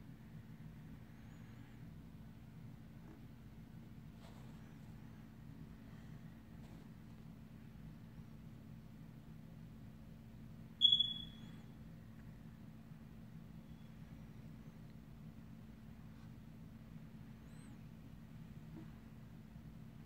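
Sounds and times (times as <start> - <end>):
faint steady hum: 0.0 - 20.0
faint short chirp: 10.8 - 11.7.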